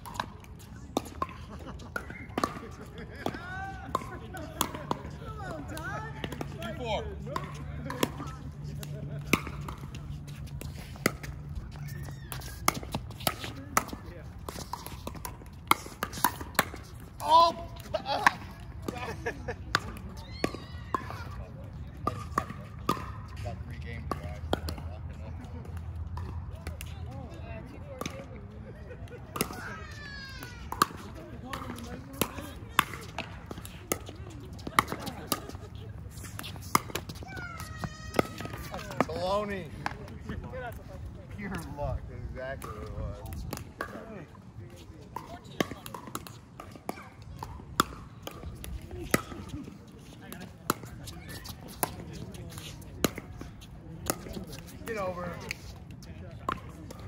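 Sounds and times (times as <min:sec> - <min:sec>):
ball bouncing on hard court: 0:02.0 - 0:17.0, 0:30.5 - 0:40.4, 0:44.7 - 0:53.4
paddles hitting plastic ball: 0:02.0 - 0:21.3, 0:29.3 - 0:40.8, 0:41.4 - 0:57.0.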